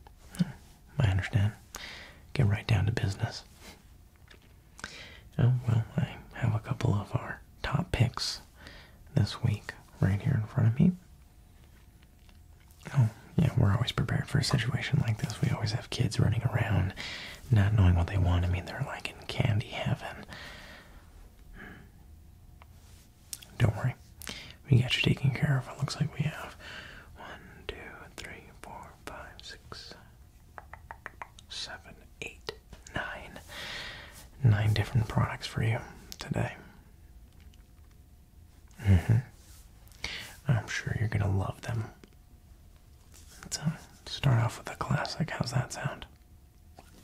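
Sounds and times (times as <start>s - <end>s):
man half-whispering: 0.3s - 3.8s, 5.3s - 11.0s, 12.8s - 20.4s, 23.3s - 30.2s, 30.9s - 33.5s, 34.1s - 36.8s, 38.7s - 39.4s, 40.0s - 42.1s, 43.3s - 46.2s.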